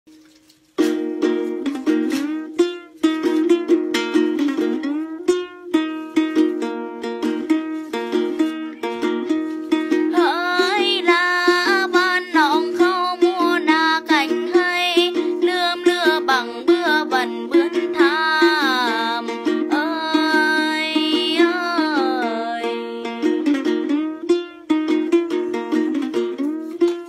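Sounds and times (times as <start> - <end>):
plucked lute: 0.1 - 27.0
woman singing: 9.9 - 23.5.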